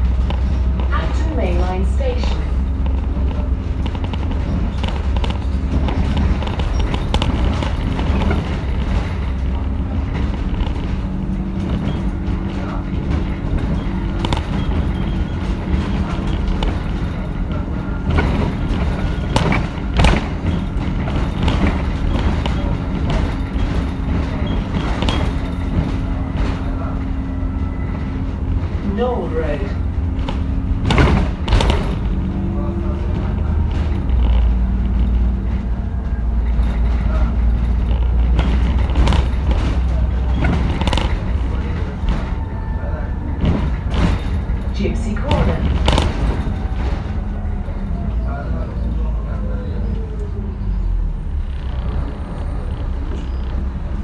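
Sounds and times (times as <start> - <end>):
bodywork rattling and knocking: 0.0 - 50.2, 51.2 - 54.0
bus diesel engine rumbling: 0.0 - 54.0.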